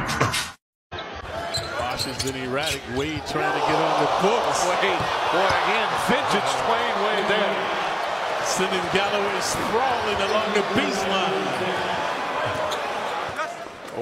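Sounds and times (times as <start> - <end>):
crowd noise: 1.0 - 14.0
voices in crowd: 1.2 - 14.0.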